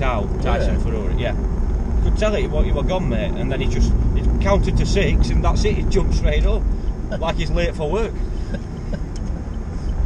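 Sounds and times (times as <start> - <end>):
car engine and tyre noise: 0.0 - 10.0.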